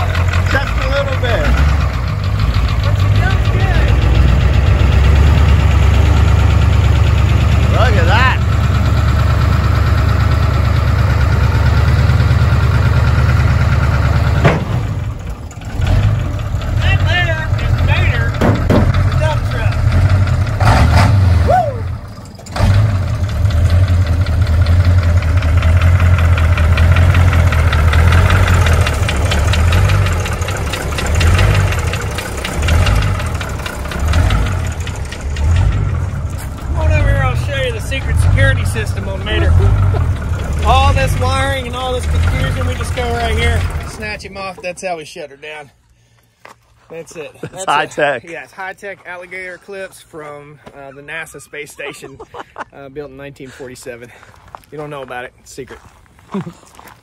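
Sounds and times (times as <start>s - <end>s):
truck engine idling: 0.0s - 46.8s.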